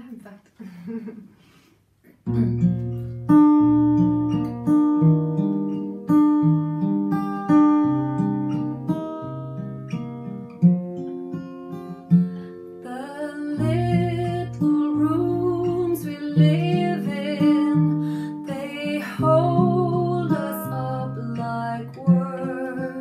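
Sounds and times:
acoustic guitar: 0:00.0 - 0:23.0
woman singing slow song: 0:12.8 - 0:23.0.

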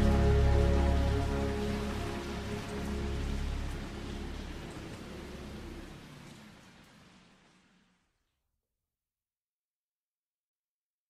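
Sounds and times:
ambient music with low notes: 0:00.0 - 0:07.6
rushing hiss of water: 0:00.0 - 0:08.2.

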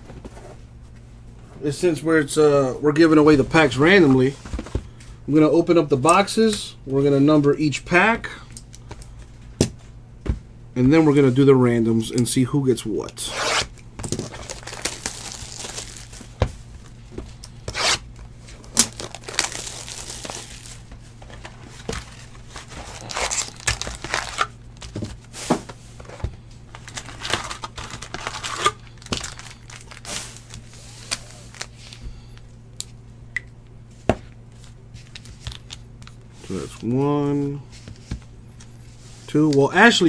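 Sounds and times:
wrappers crinkling and rustling: 0:14.0 - 0:17.0, 0:17.7 - 0:25.3, 0:26.0 - 0:32.5.

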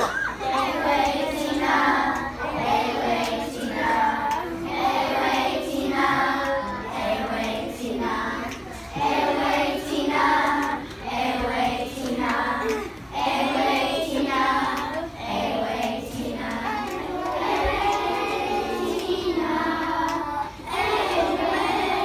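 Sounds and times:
young children singing: 0:00.0 - 0:22.0.

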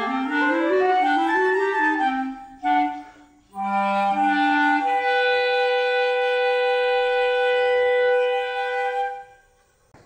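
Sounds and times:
flute and clarinet long note: 0:00.0 - 0:09.6.

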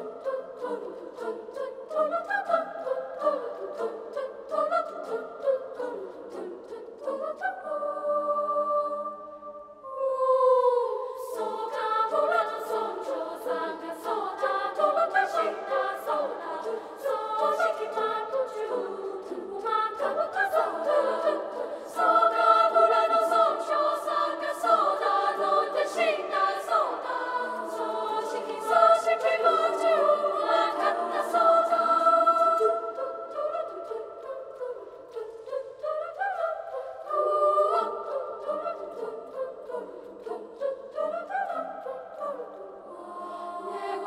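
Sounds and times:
children's choir singing: 0:00.0 - 0:44.0.

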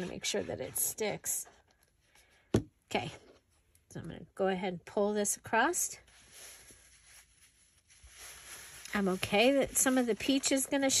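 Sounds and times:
fabric rustling: 0:06.0 - 0:11.0.

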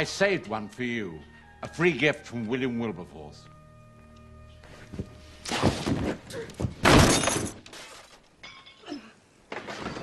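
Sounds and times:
glass smashing: 0:06.8 - 0:07.6.

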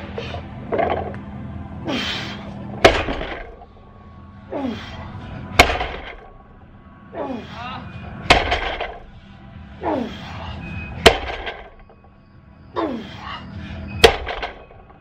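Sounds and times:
man grunting: 0:07.2 - 0:07.9, 0:09.8 - 0:10.3
barbell plates thudding on floor: 0:08.3 - 0:09.0, 0:11.1 - 0:11.8, 0:14.0 - 0:14.6.

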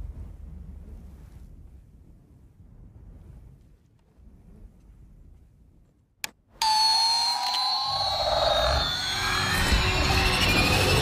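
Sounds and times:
low rumble: 0:00.0 - 0:06.0
electronic siren-like gliding tones: 0:06.6 - 0:11.0.

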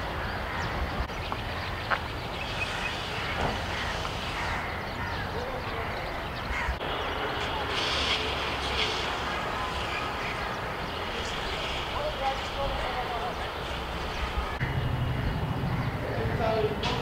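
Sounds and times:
distant voices: 0:00.0 - 0:17.0
low rumble of traffic: 0:00.0 - 0:17.0.

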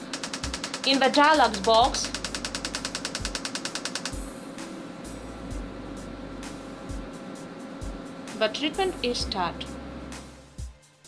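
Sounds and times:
magnetic stimulator coil clicking: 0:00.0 - 0:04.3.

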